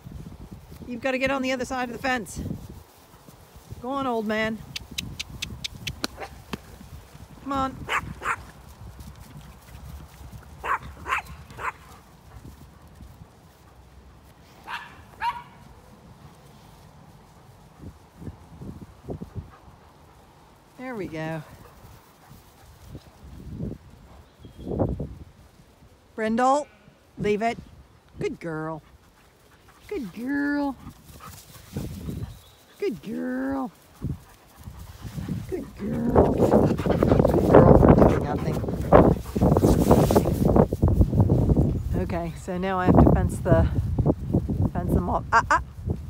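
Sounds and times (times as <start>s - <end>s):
small dogs yapping: 7.9s - 8.5s, 10.6s - 11.9s, 14.7s - 15.6s
dog panting running past: 33.8s - 40.5s.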